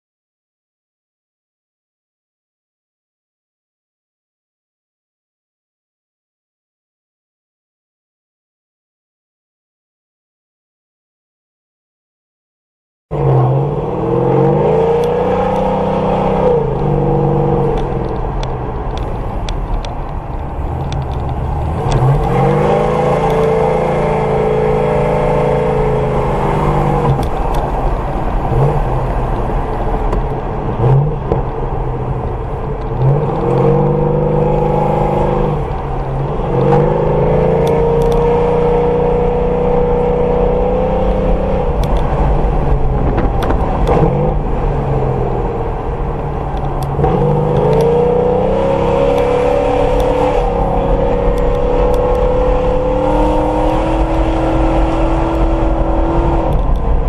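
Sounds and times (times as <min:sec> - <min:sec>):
car engine accelerating through gears: 0:13.1 - 0:57.0.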